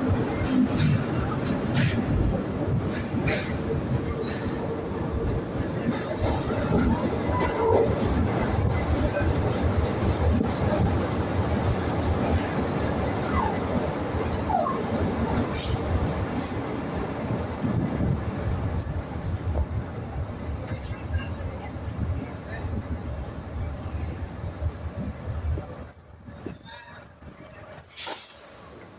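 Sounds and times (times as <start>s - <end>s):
train wheels rumbling on rail: 0.0s - 28.9s
wheel squeals: 17.0s - 19.3s, 24.1s - 28.8s.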